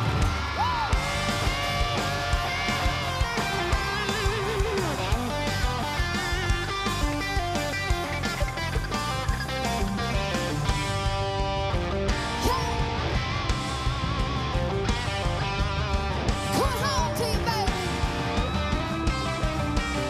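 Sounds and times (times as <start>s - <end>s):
drums keeping steady beat: 0.0s - 20.0s
live band: 0.0s - 20.0s
electric guitar solo: 0.1s - 20.0s.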